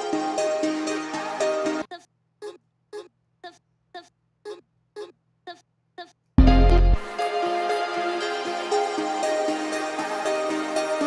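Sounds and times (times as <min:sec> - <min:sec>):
repeating vocal sample chop: 0:01.9 - 0:06.6.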